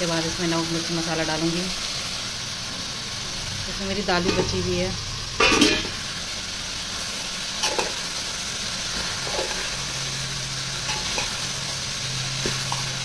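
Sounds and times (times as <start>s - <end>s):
food sizzling in a pot: 0.0s - 13.0s.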